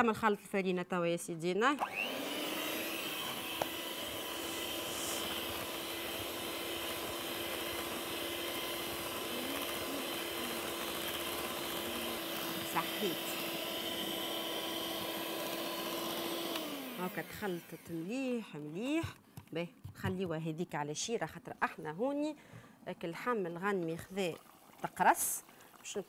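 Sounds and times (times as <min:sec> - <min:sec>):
electric hand mixer whining: 0:01.8 - 0:18.4.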